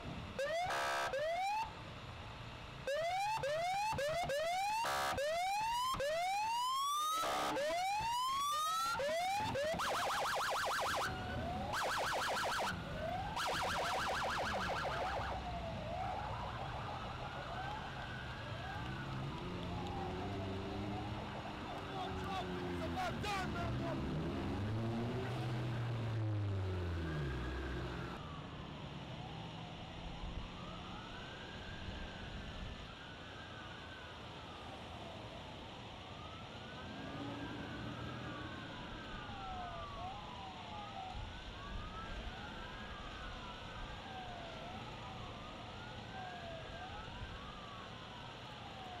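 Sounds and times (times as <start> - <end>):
traffic noise: 0.0 - 49.0
police sirens wailing: 0.2 - 1.8, 2.8 - 28.6, 30.2 - 49.0.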